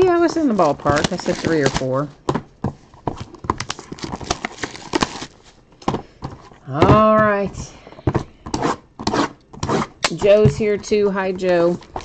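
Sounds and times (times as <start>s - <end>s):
cardboard boxes tapping and rustling: 0.0s - 5.1s.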